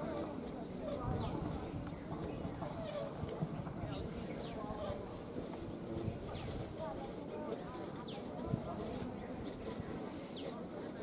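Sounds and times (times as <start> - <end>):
wind rumble on microphone: 0.8 - 7.2.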